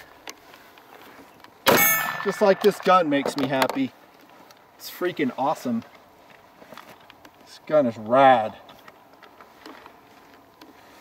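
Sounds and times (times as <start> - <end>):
pistol shot: 1.7 - 2.6.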